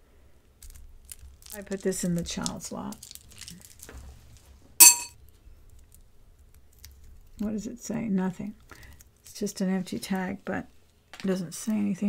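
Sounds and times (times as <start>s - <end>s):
jewelry clinking: 4.8s - 5.1s.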